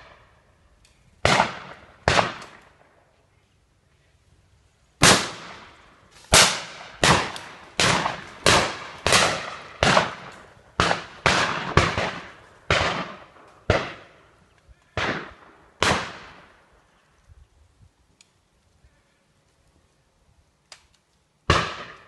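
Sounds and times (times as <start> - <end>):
shotgun shots echoing: 1.2 - 2.9, 5.0 - 14.2, 15.0 - 16.6, 21.5 - 22.0.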